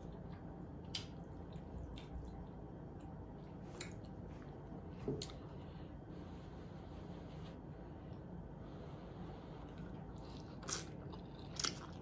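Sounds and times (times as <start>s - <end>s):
wet chewing and mouth sounds: 0.0s - 4.3s, 9.6s - 12.0s.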